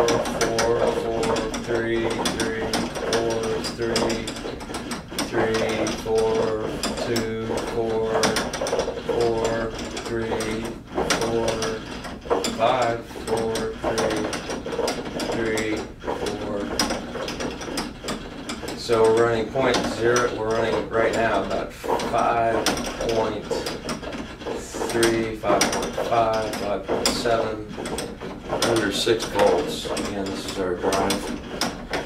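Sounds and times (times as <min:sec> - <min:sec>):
motorised arm whirring and clicking: 0:00.0 - 0:32.0.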